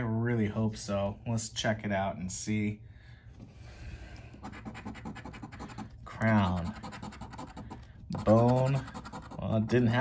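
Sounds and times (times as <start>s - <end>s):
coin scratching lottery ticket: 4.4s - 9.8s.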